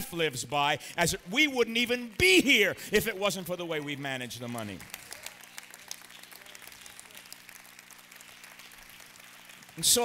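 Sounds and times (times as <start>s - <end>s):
crowd applauding: 0.6s - 10.0s.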